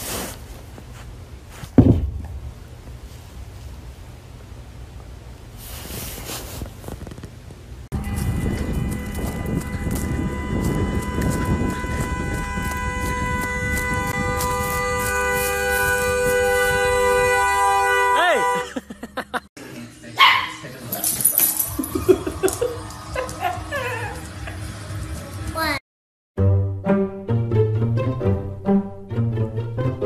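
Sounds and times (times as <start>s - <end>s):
wind noise: 7.9s - 17.3s.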